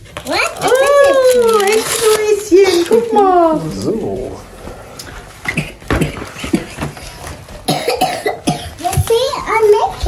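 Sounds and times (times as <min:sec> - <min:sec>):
short coughs: 0:07.7 - 0:08.7
child's wordless voice: 0:08.8 - 0:10.0.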